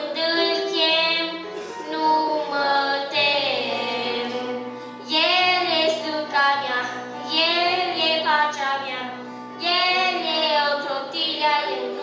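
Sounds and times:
boy singing into a microphone: 0.0 - 12.0
electronic keyboard accompaniment: 0.0 - 12.0.

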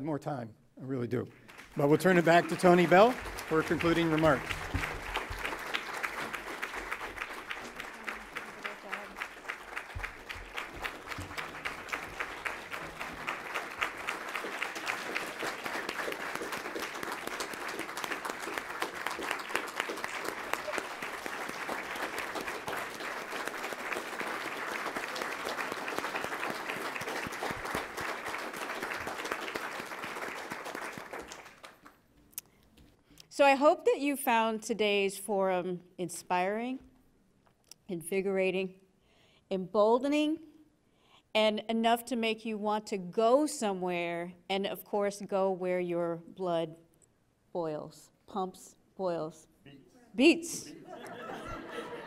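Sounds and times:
large audience applauding: 1.4 - 32.0, 51.0 - 52.0.

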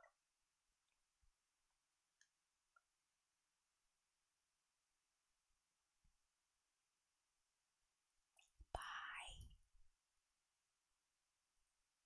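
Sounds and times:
woman's breathy whisper: 8.4 - 9.6.

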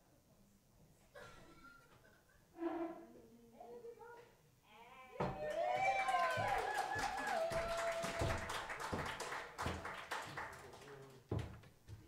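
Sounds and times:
audience clapping: 5.4 - 11.6.

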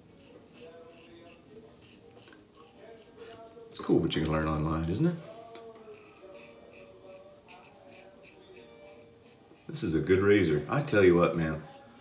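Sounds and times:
razor cutting stubble: 0.0 - 4.7, 5.3 - 12.0.

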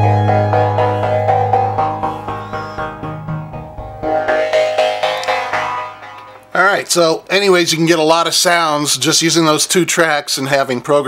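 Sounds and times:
synthesizer chord: 0.0 - 6.6
man speaking: 6.5 - 11.0.

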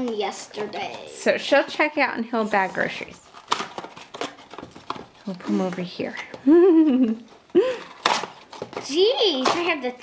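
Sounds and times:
packaging rustling: 2.9 - 6.4, 7.2 - 10.0.

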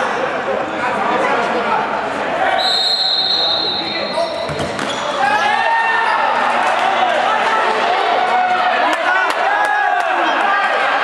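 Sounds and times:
referee whistle blast: 2.6 - 5.2
ball thudding on court: 4.5 - 5.0.

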